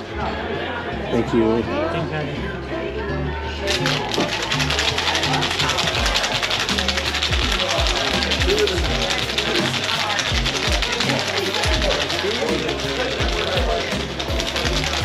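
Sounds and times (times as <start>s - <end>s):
ice rattling in cocktail shaker: 3.6s - 15.0s.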